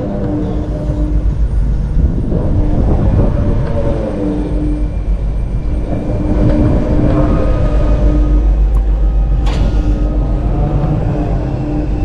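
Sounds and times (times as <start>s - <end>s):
ride machinery hum: 0.0s - 12.0s.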